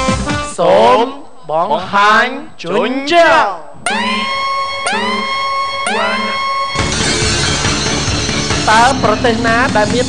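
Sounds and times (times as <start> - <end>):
person shouting: 3.3 - 6.5
siren-like electronic tone: 3.8 - 9.0.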